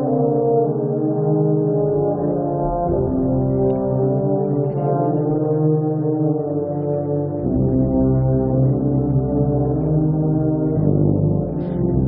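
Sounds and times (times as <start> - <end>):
wind band playing slow chords: 0.0 - 12.0
deep bass note: 1.9 - 4.1.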